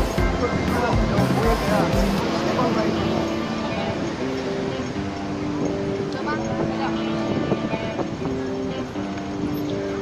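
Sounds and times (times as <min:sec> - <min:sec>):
people talking: 0:00.0 - 0:04.0
background music: 0:00.0 - 0:10.0
traffic: 0:00.0 - 0:10.0.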